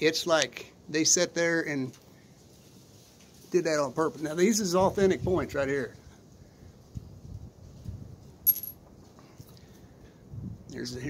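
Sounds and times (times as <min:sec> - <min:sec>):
handling bumps and rustles: 0:08.4 - 0:08.9
stone clinking against stone: 0:08.5 - 0:08.8.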